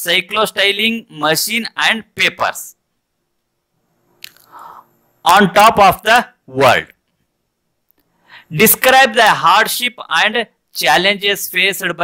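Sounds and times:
faint mouth click: 4.2 - 4.6
soft intake of breath: 4.4 - 5.0, 8.1 - 8.5.

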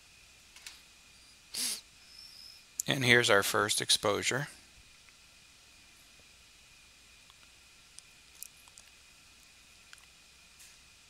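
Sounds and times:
person sniffing: 1.5 - 1.8
man speaking: 2.8 - 4.6.

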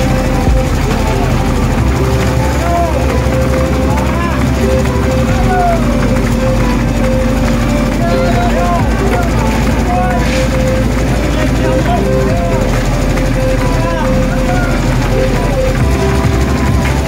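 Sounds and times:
engine running steadily: 0.0 - 17.0
workers' voices and calls: 0.0 - 17.0.

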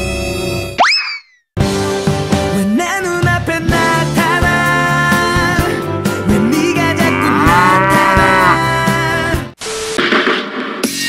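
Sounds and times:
background music: 1.6 - 11.0.

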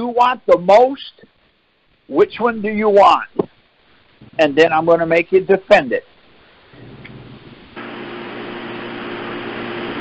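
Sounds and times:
mechanical hum with hiss: 0.0 - 10.0.

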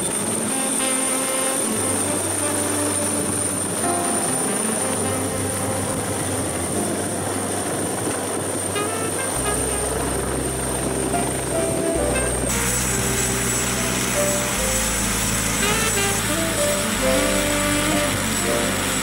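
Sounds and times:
helicopter rotor noise: 0.0 - 9.9, 10.6 - 19.0
slow bass chord music: 1.5 - 19.0.

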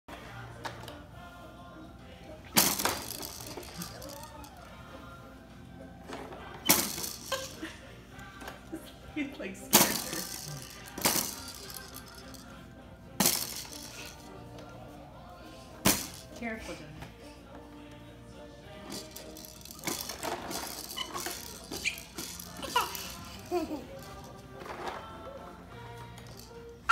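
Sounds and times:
faint music: 0.1 - 26.9
plastic toys clattering: 2.6 - 4.6, 6.1 - 7.7, 9.7 - 12.5, 13.2 - 14.3, 15.8 - 16.4, 18.8 - 25.3, 26.2 - 26.8.

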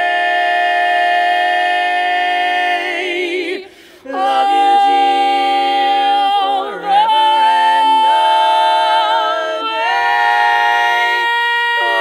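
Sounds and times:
women singing a cappella chord: 0.0 - 12.0.

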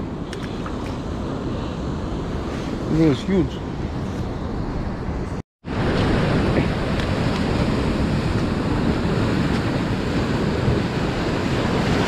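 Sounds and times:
wind buffeting microphone: 0.0 - 12.0
surf breaking on rocks: 5.6 - 12.0.

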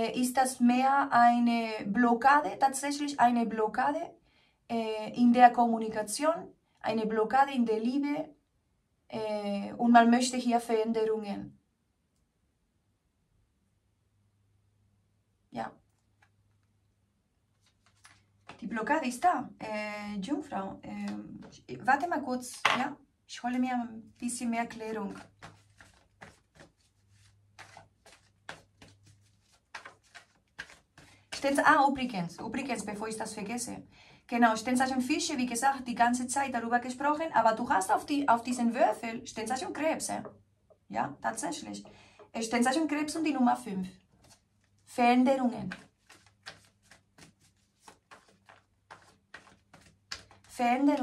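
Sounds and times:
cards clicking and flicking: 25.4 - 31.2, 45.7 - 50.5.

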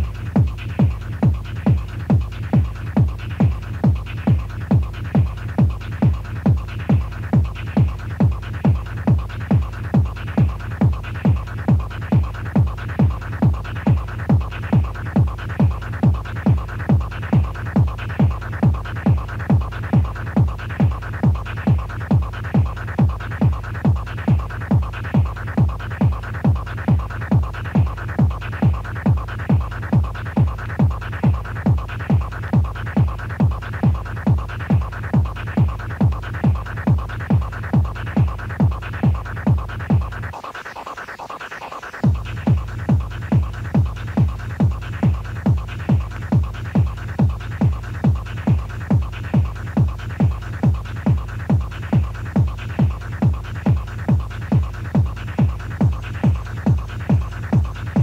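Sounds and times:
electronic dance music: 0.0 - 58.0.

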